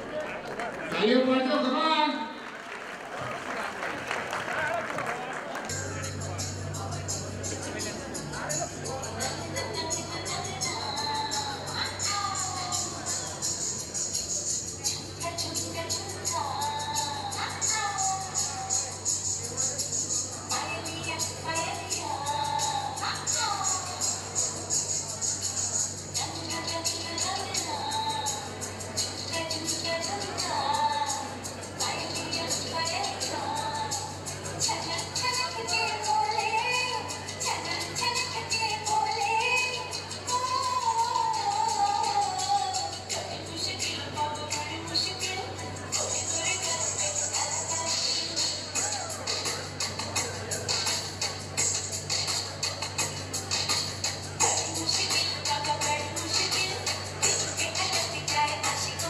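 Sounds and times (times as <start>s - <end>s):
song over loudspeakers: 9.0s - 13.9s, 25.4s - 59.0s.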